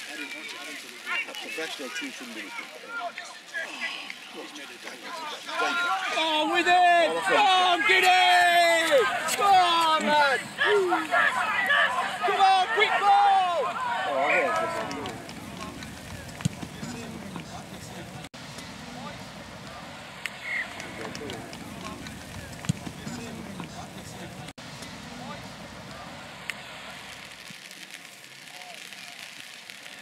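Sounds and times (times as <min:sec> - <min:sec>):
faint outdoor background noise: 0:00.0 - 0:30.0
faint voices: 0:00.0 - 0:30.0
crowd clapping: 0:07.4 - 0:18.3, 0:19.7 - 0:24.5.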